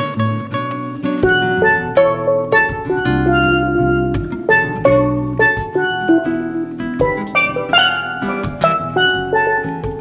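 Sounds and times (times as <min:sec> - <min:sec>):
bass line: 0:00.0 - 0:10.0
guitar accompaniment: 0:00.0 - 0:10.0
steel pan melody: 0:00.0 - 0:10.0.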